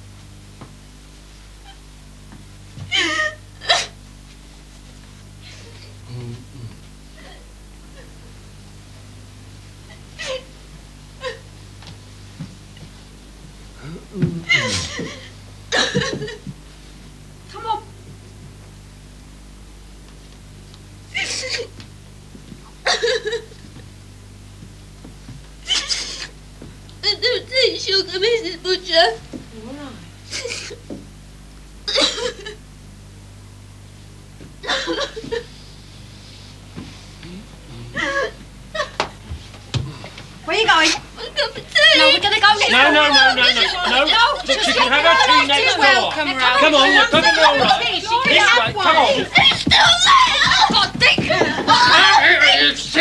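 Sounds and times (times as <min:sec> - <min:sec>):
woman sobbing: 0:02.9 - 0:04.0, 0:07.2 - 0:08.1, 0:10.2 - 0:10.5, 0:11.2 - 0:11.4, 0:13.9 - 0:16.5, 0:21.2 - 0:21.7, 0:22.8 - 0:23.5, 0:31.9 - 0:32.6, 0:34.6 - 0:35.4, 0:37.8 - 0:39.0.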